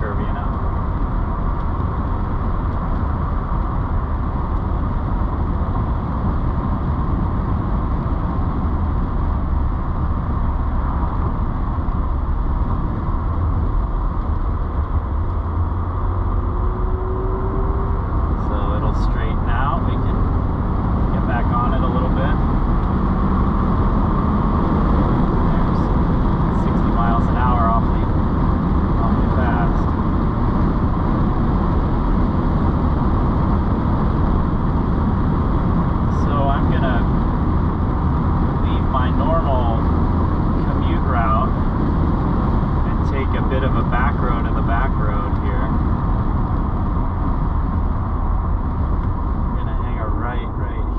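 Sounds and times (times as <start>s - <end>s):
car engine low rumble: 0.0s - 50.9s.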